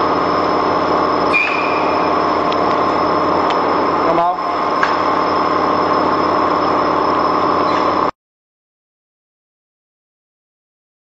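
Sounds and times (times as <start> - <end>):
laminating machine humming: 0.0 - 8.1
thin high whine: 0.0 - 8.2.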